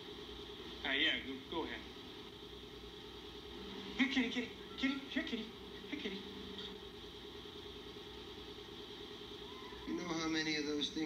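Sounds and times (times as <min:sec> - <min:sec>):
faint background hum and hiss: 0:00.0 - 0:11.0.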